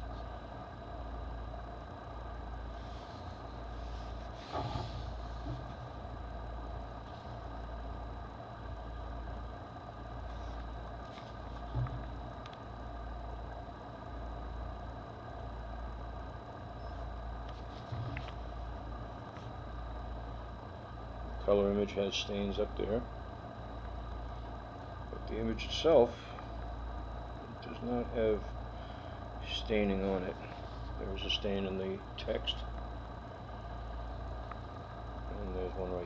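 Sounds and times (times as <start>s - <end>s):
low background hum: 0.0s - 36.0s
paper pages rustling: 10.3s - 11.6s.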